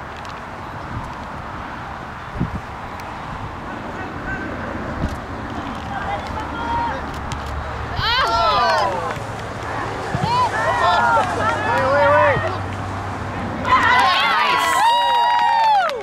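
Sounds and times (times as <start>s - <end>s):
low outdoor background noise: 0.0s - 16.0s
high-pitched shouting voices: 8.0s - 9.1s.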